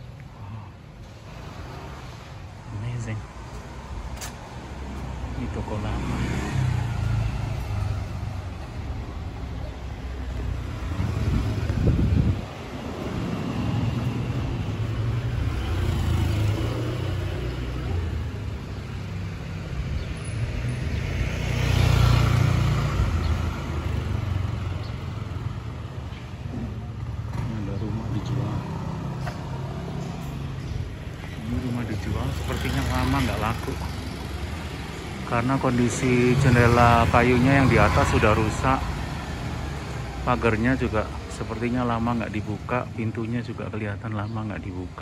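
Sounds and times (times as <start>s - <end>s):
traffic: 0.0s - 45.0s
motor vehicle passing: 3.4s - 41.0s.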